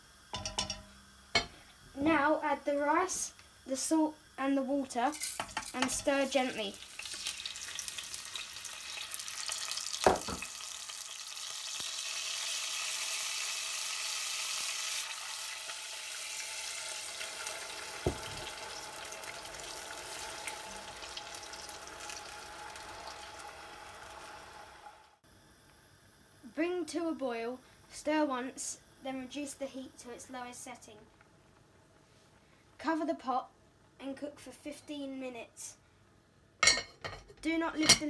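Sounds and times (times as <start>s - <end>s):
hot oil hissing and sizzling: 0.0s - 25.2s
metal knocking on pot: 0.4s - 1.6s.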